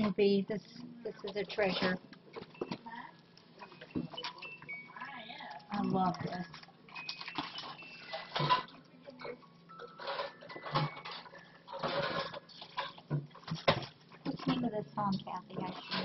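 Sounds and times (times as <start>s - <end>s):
plastic wrapping crinkling: 1.7s - 13.0s.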